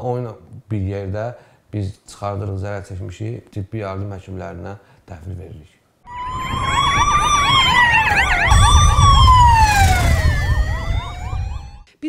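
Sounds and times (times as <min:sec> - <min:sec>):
siren wailing: 0:06.1 - 0:11.9
siren yelping: 0:06.1 - 0:11.9.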